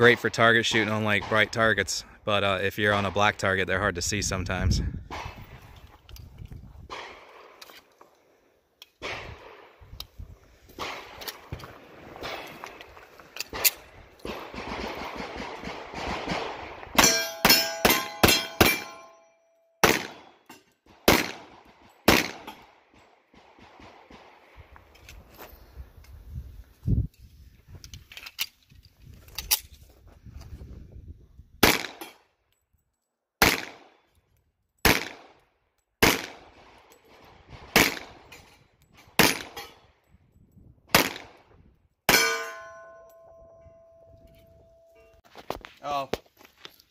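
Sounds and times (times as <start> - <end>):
handling clicks and rustle: 5.6 - 6.8, 10.8 - 14.5, 24.8 - 30.6, 44.1 - 46.9
pistol shots: 6.9 - 7.6, 10.8 - 12.6, 13.5 - 19.1, 19.8 - 24.5, 31.6 - 32.2, 33.4 - 34.0, 34.8 - 35.4, 36.0 - 38.3, 39.1 - 39.7, 40.9 - 41.4
ring of hit steel: 42.1 - 45.2.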